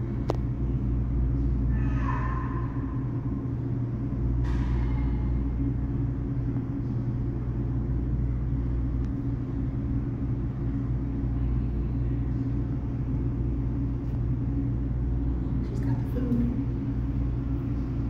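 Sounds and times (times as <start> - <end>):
machinery rumble and hum: 0.0 - 18.0.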